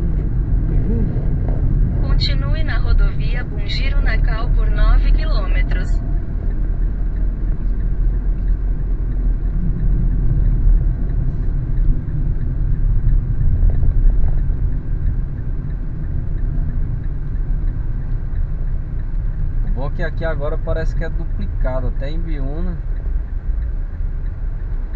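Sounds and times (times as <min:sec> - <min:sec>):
car road and engine rumble: 0:00.0 - 0:24.9.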